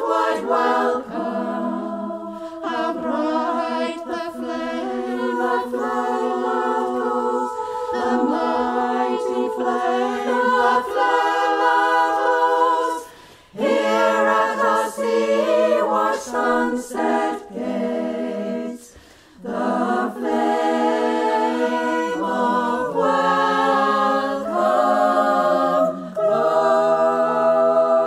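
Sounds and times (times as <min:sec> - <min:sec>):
women's choir singing a cappella: 0:00.0 - 0:28.0.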